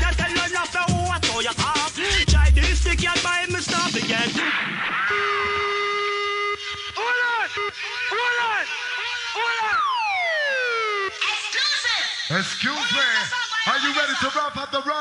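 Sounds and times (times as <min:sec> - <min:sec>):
electronic drum beat: 0:00.0 - 0:04.4
siren-like whoops: 0:09.3 - 0:11.5.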